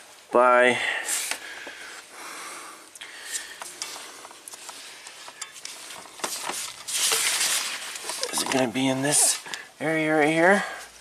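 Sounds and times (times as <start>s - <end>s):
rustling wiring harness: 3.0s - 11.0s.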